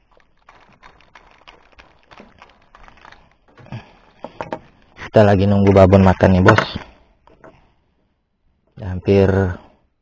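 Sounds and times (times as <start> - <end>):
fishing gear clicking and knocking: 0.0 - 7.6.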